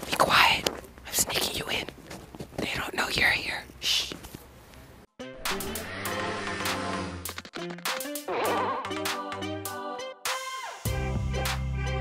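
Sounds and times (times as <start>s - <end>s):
person whispering: 0.0s - 2.0s, 2.6s - 4.2s.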